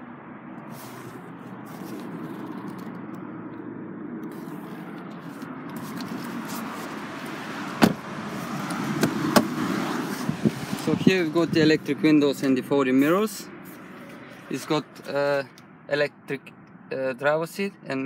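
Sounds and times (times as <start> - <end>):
sharp knocks: 7.8 - 8.0.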